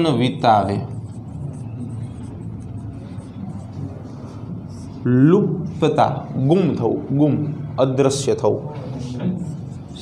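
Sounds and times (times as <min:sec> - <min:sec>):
marker pen writing on whiteboard: 0:00.0 - 0:05.1, 0:08.6 - 0:10.0.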